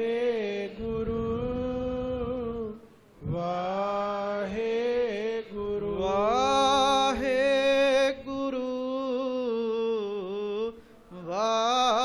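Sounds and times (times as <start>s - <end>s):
man chanting: 0.0s - 12.0s.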